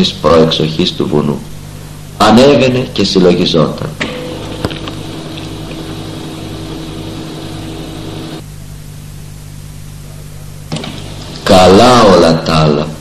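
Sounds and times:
steady low hum: 0.0 - 13.0
higher steady tone: 4.2 - 9.5.

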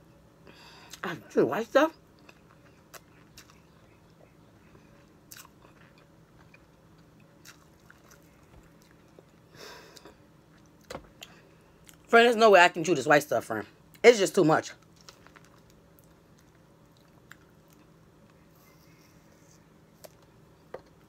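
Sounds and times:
person biting and chewing citrus: 2.2 - 12.0.

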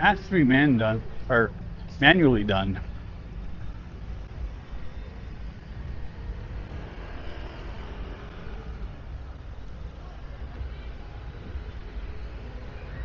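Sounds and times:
cars and motorbikes passing: 0.0 - 13.0
low traffic rumble: 0.0 - 13.0.

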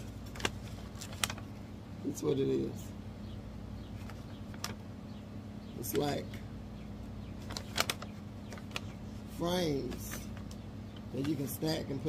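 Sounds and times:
paper crackling: 0.0 - 1.6, 4.0 - 4.9, 7.4 - 12.0
steady low hum: 0.0 - 12.0.

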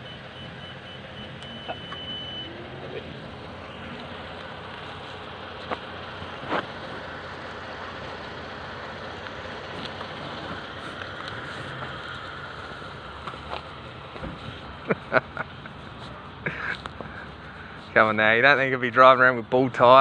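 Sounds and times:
high steady beep: 0.0 - 2.6
vehicle engine humming: 0.0 - 20.0.

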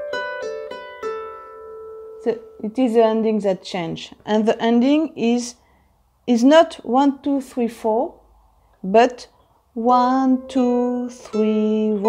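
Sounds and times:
harp notes plucked: 0.0 - 3.0, 9.8 - 12.0.

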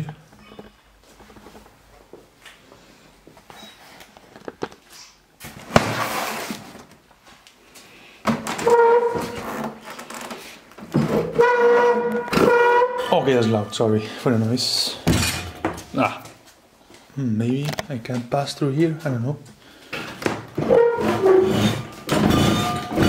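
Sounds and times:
loud scraping squeal: 8.6 - 9.7, 11.3 - 13.2, 20.6 - 23.0
scraping rattle: 20.6 - 23.0.

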